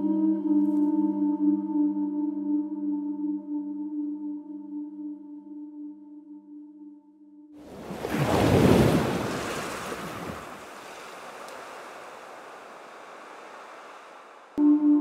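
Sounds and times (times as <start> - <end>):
steady hiss: 10.3 - 14.6.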